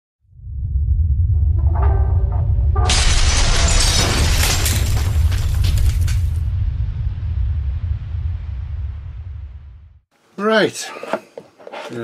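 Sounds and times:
deep rumbling drone: 0:00.2 - 0:10.1
loud shattering crash: 0:01.6 - 0:09.8.

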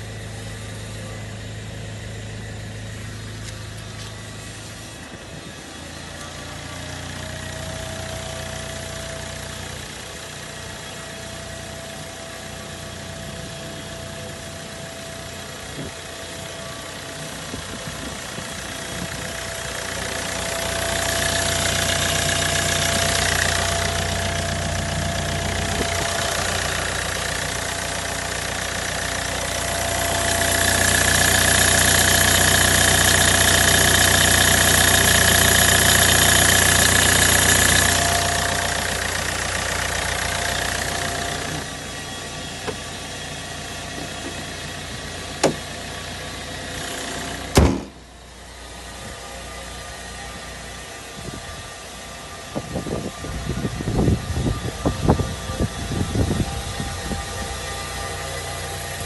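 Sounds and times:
diesel engine idling: 0:00.0 - 0:59.0
steady high whine: 0:00.0 - 0:59.0.

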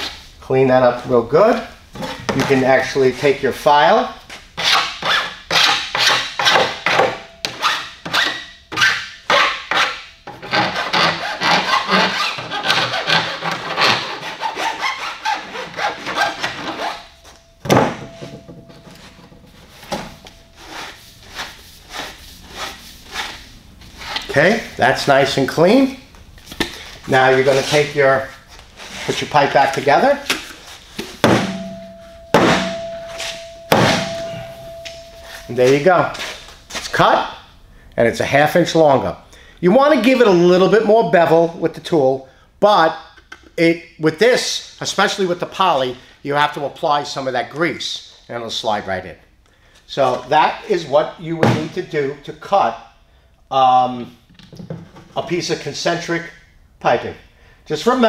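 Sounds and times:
file rasping on plastic pipe: 0:09.7 - 0:16.5.

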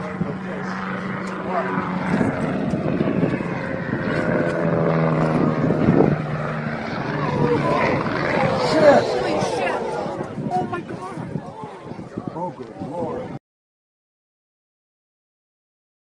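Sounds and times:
small airplane engine droning: 0:00.0 - 0:13.4
spectators' voices: 0:07.0 - 0:13.4.

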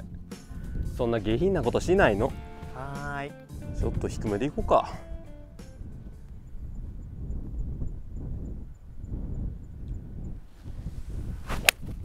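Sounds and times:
wind on microphone: 0:00.0 - 0:12.0
golf club swing swish: 0:10.6 - 0:12.0.

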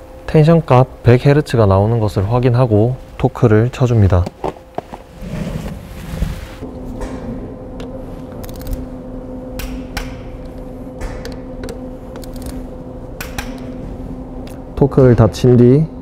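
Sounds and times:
low hum: 0:00.0 - 0:16.0.

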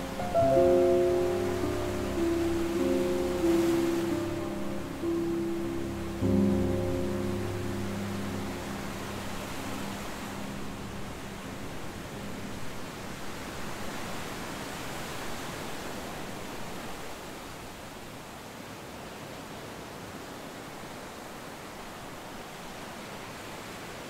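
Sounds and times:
background music chord: 0:00.0 - 0:13.8
steady rushing noise: 0:00.0 - 0:15.3.

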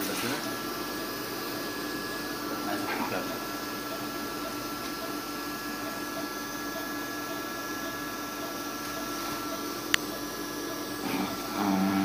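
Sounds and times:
machine hum: 0:00.0 - 0:12.0
faint voice: 0:11.0 - 0:12.0.

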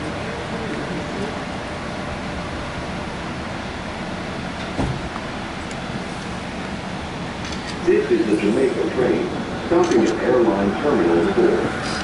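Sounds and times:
train cabin rumble: 0:00.0 - 0:12.0
low thump: 0:04.7 - 0:05.1.

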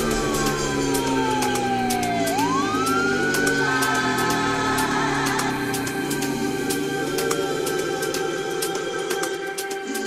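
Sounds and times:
siren-like synth tone: 0:00.0 - 0:06.0
ticking hi-hats: 0:00.0 - 0:10.0.

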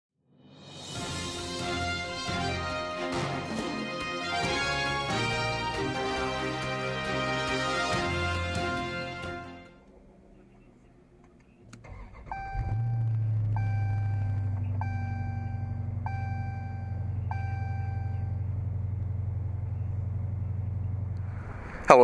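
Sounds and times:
car engine starting and idling: 0:01.2 - 0:22.0
dashboard warning chime: 0:12.3 - 0:18.4.

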